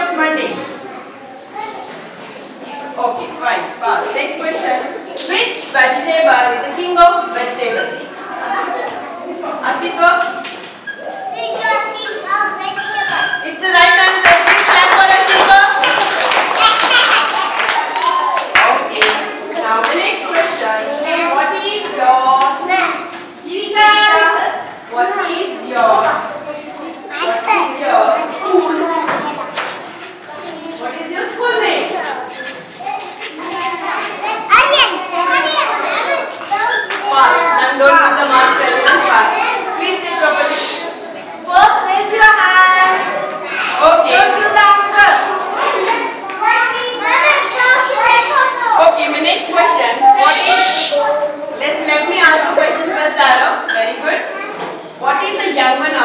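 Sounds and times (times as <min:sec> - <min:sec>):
child speaking: 0:00.5 - 0:03.4, 0:11.0 - 0:13.4, 0:15.4 - 0:17.7, 0:20.2 - 0:23.3, 0:25.0 - 0:31.0, 0:31.9 - 0:37.8, 0:38.6 - 0:41.8, 0:42.5 - 0:44.4, 0:45.2 - 0:52.8, 0:54.2 - 0:55.0.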